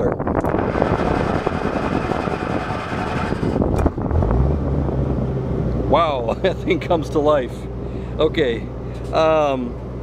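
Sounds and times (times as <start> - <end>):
generator engine running: 0.5 - 10.0.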